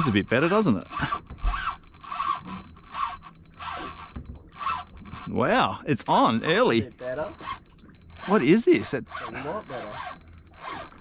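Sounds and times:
fishing reel rasping scrape: 0.0 - 11.0.

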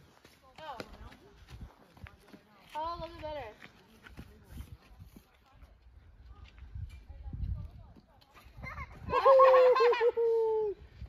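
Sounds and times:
footsteps on sandy dirt: 0.0 - 8.6.

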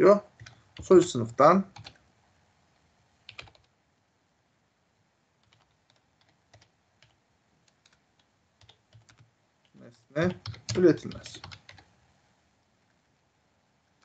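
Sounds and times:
keyboard typing: 0.3 - 1.1, 1.7 - 2.0, 3.3 - 3.8, 5.4 - 12.0.

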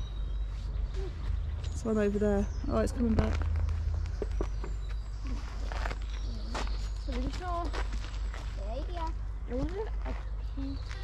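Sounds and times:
footsteps on woodland path: 0.2 - 11.0.

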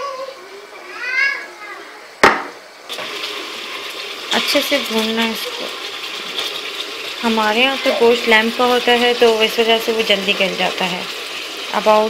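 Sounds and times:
sharp knock: 2.2 - 2.6
meat sizzling in hot oil: 2.2 - 12.0.

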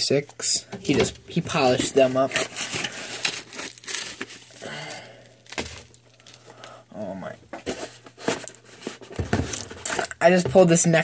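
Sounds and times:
packaging crinkling and rustling: 1.4 - 6.8, 7.5 - 10.2.

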